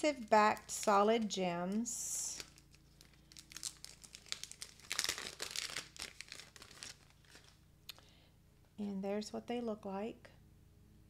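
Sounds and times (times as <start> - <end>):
plastic packaging crinkling: 0.0 - 7.6.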